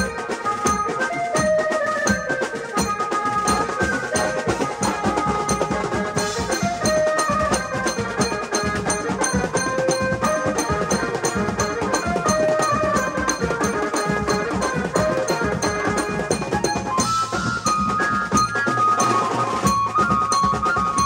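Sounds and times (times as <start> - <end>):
drums and cymbals beating: 0.0 - 21.0
melody of held notes: 0.0 - 21.0.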